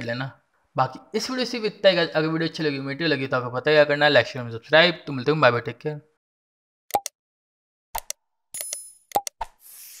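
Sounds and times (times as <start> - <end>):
sharp clicks and pops: 6.9 - 7.1, 8.0 - 9.6.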